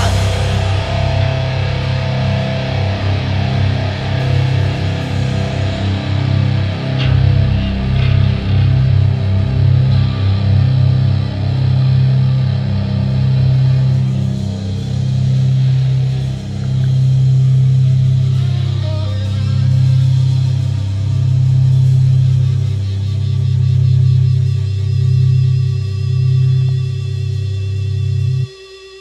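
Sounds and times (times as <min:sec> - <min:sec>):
distorted electric guitar riff: 0:00.0 - 0:28.5
bass guitar: 0:00.0 - 0:28.6
drums: 0:00.0 - 0:29.0.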